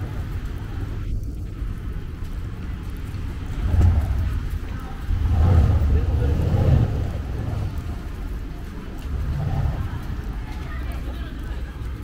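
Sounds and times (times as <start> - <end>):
city street rumble: 0.0 - 12.0
passersby talking: 3.6 - 12.0.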